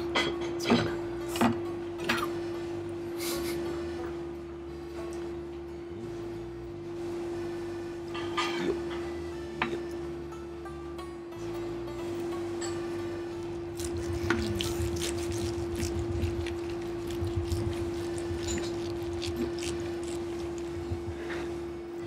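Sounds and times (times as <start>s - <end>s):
background music: 8.1s - 21.2s.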